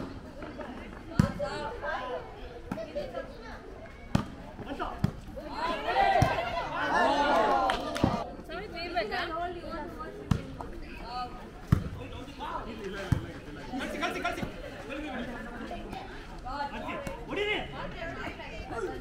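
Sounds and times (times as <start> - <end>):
voices calling and chattering: 0.0 - 19.0.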